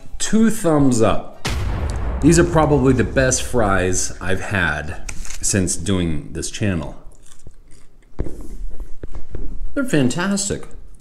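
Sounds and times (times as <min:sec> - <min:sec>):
person chewing food: 0:07.1 - 0:08.4.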